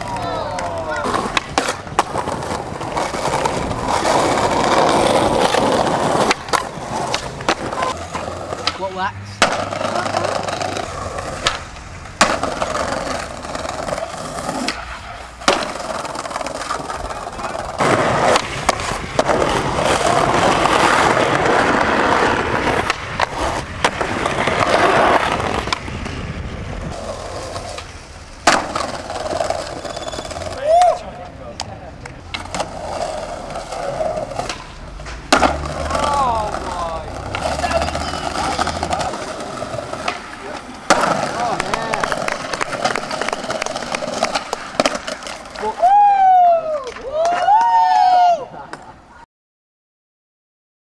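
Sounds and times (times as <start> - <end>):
skateboard wooden clacks: 0.0 - 8.8, 9.4 - 26.2, 26.9 - 31.0, 31.6 - 45.7
skateboard wheels rolling on brick: 0.0 - 49.0.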